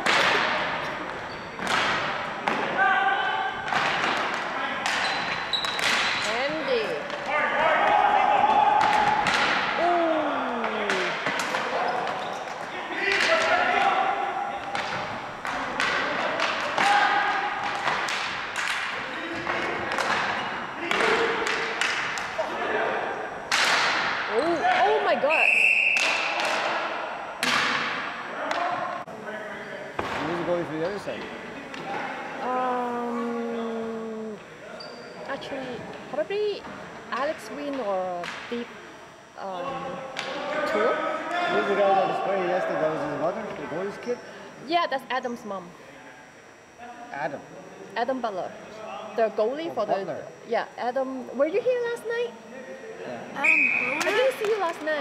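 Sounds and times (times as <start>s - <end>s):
sticks hitting ball: 3.7s - 6.2s, 13.1s - 13.6s, 14.6s - 22.3s, 23.5s - 24.2s
players shouting: 7.2s - 18.0s
whistle blast: 25.2s - 26.2s, 53.4s - 54.1s.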